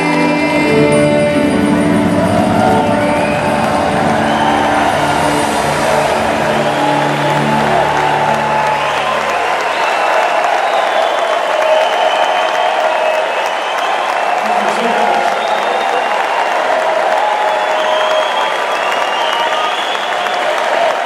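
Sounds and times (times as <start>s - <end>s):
orchestra and rock band chord: 0.0s - 9.7s
audience applauding and cheering: 0.0s - 21.0s.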